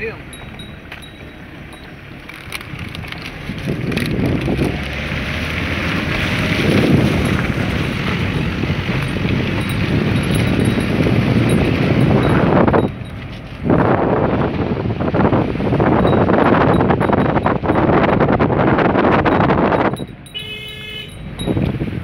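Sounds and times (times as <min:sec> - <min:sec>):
moving vehicle noise: 0:00.0 - 0:22.0
wind rush on microphone: 0:00.3 - 0:22.0.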